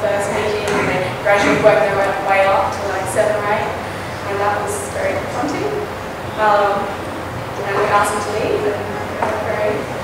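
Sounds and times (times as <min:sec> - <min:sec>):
woman talking over public address: 0:00.0 - 0:05.7.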